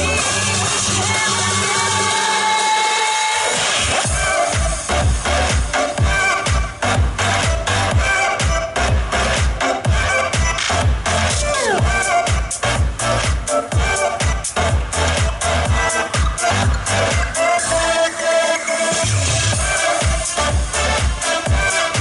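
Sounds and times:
pop song over pa: 0.0 - 22.0
kick-drum beat: 4.0 - 17.6, 19.1 - 22.0.

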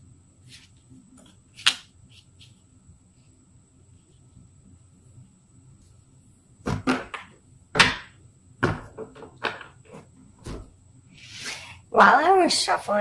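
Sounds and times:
cards shuffling: 0.5 - 2.6.

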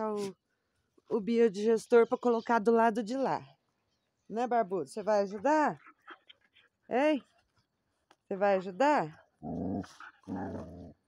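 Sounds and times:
dog growling: 9.4 - 11.0.

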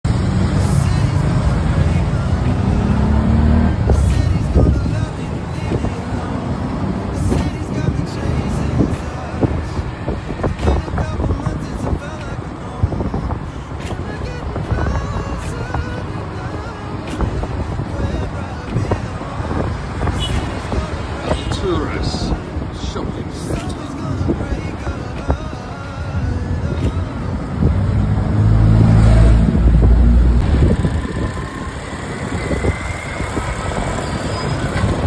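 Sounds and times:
music: 0.1 - 31.3.

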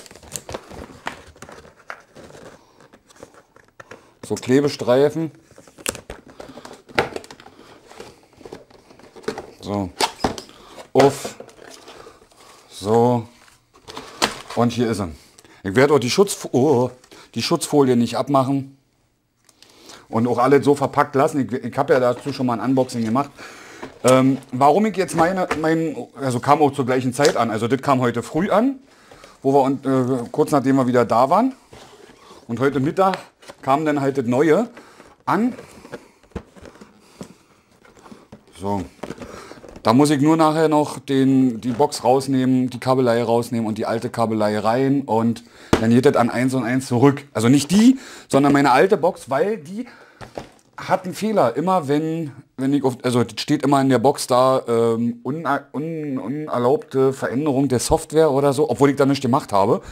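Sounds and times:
cardboard packaging handled: 0.0 - 4.0, 5.3 - 12.7, 21.8 - 27.4, 28.6 - 40.2.

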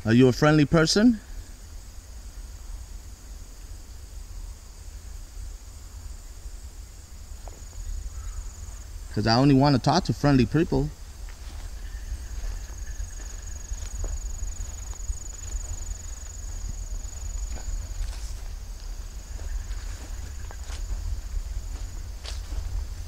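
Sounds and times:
insect trilling: 0.0 - 23.0
footsteps on grass: 7.3 - 8.9, 10.2 - 23.0.

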